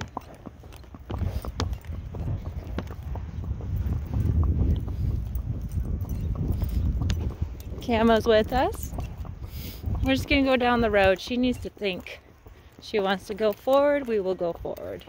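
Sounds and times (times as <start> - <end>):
hooves clip-clopping on wet asphalt: 0.0 - 15.0.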